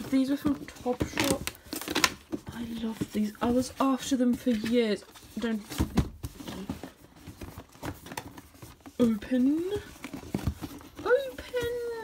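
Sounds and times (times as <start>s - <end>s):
cardboard box rustling: 0.0s - 12.0s.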